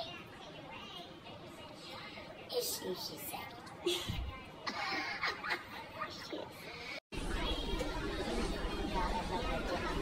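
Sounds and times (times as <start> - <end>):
background chatter of many voices: 0.0 - 10.0.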